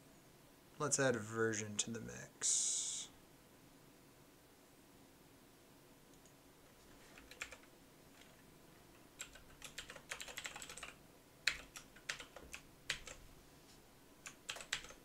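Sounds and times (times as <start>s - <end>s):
computer keyboard typing: 7.2s - 13.2s, 14.2s - 15.0s.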